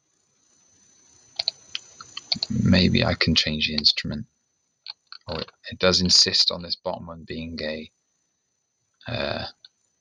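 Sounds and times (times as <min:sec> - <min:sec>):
faint hiss: 0:01.0 - 0:04.2, 0:04.9 - 0:07.9, 0:09.1 - 0:09.6
computer mouse clicking: 0:01.4 - 0:02.6.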